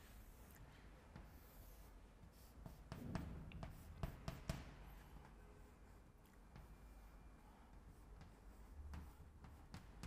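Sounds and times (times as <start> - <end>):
chalk drawing on blackboard: 0.0 - 10.0.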